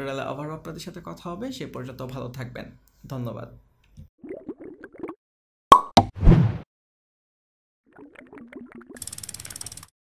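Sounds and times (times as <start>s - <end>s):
fast ratcheting rattle: 9.0s - 9.9s.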